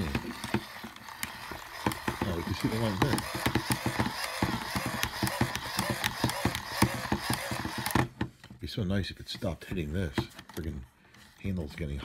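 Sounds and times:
crank handle knocking: 0:00.0 - 0:08.1
hand-crank dynamo whirring: 0:00.0 - 0:08.2.

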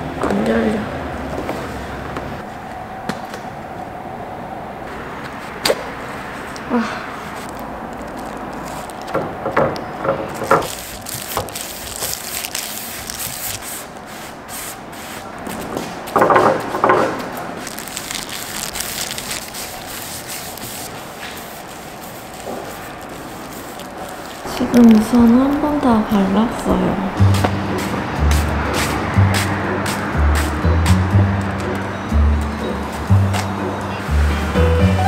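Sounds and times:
plastic rustling and crinkling: 0:07.2 - 0:26.0
paintbrush rubbing on wood: 0:19.5 - 0:24.3.

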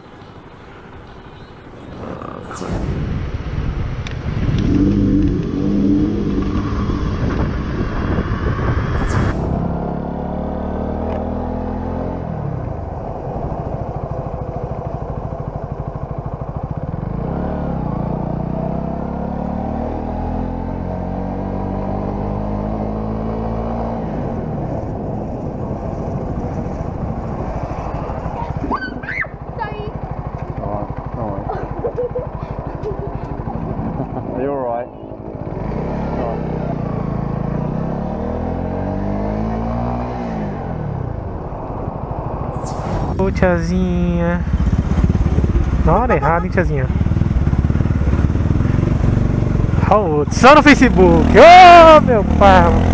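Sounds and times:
motorcycle engine revving: 0:01.8 - 0:52.9.

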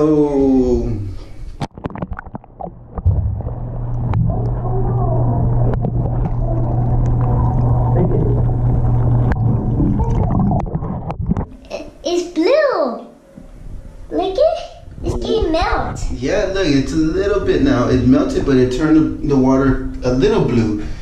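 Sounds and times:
underwater splashes and knocks: 0:01.6 - 0:04.6, 0:05.4 - 0:11.6
low underwater rumble: 0:01.7 - 0:11.6.

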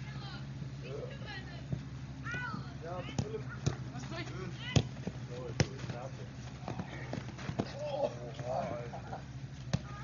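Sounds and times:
football being kicked: 0:02.3 - 0:08.7, 0:09.7 - 0:10.0.

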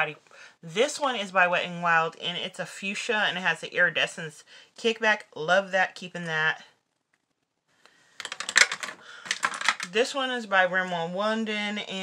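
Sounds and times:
small plastic clicks and knocks: 0:08.2 - 0:09.9.

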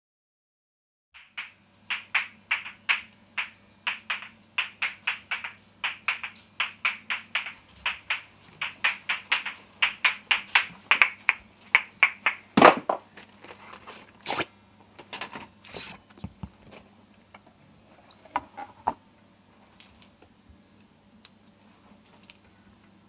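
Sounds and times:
clap-like percussion hits: 0:01.2 - 0:13.0
low electrical hum: 0:01.2 - 0:23.0.

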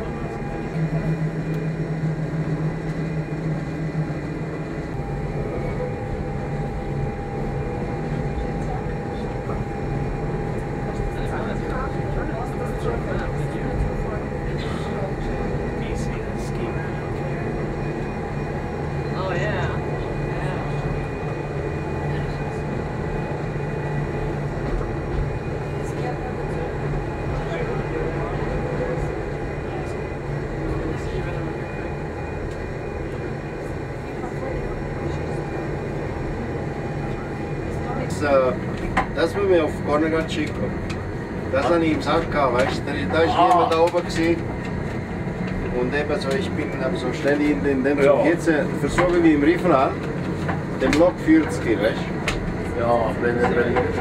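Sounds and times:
train motor drone and whine: 0:00.0 - 0:54.0.

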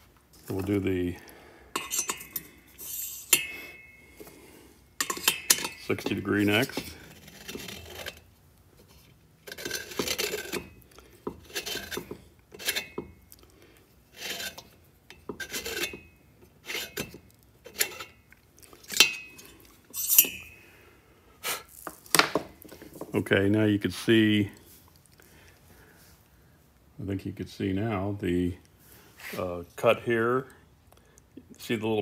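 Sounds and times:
cutter rasping on metal: 0:05.8 - 0:08.2, 0:14.1 - 0:14.7.

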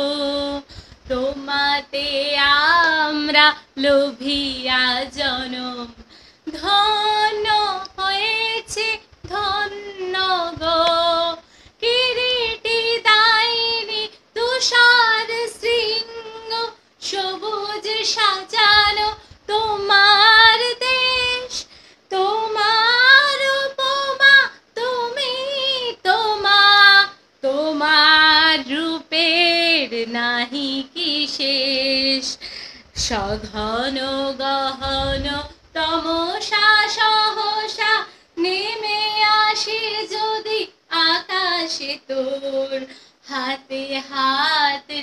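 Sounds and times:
woman singing unaccompanied: 0:00.0 - 0:45.0
short breaths: 0:00.7 - 0:01.1, 0:06.0 - 0:06.5, 0:11.4 - 0:11.8, 0:21.6 - 0:22.1, 0:32.4 - 0:33.0, 0:42.9 - 0:43.2.

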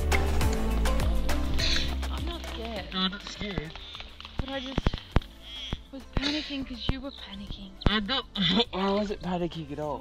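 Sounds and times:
voices talking: 0:01.6 - 0:10.0.

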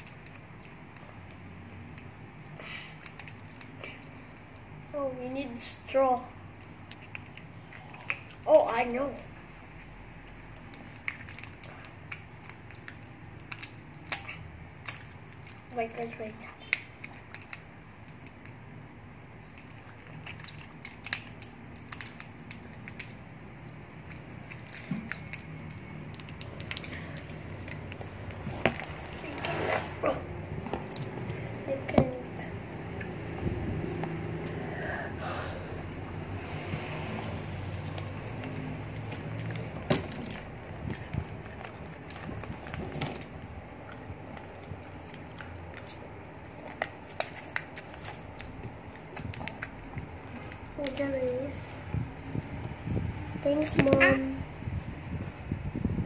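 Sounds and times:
low steady hum: 0:00.0 - 0:56.0
plastic wrappers tearing and crinkling: 0:06.6 - 0:32.2, 0:37.0 - 0:52.1.

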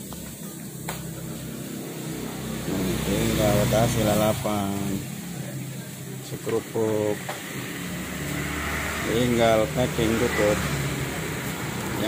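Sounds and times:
person's voice: 0:02.6 - 0:05.6.

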